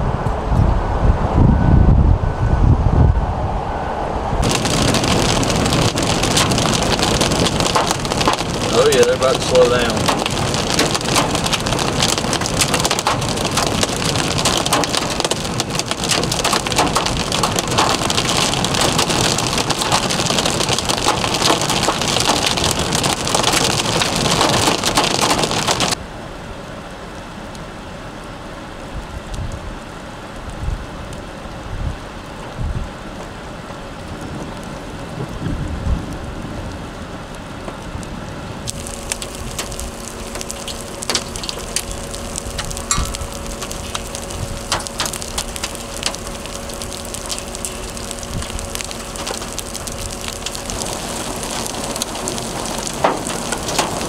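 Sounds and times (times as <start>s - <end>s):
low thumps and rumbles: 0.0s - 26.0s, 31.7s - 54.0s
heavy rain on vehicle roof: 4.4s - 26.0s, 26.6s - 54.0s.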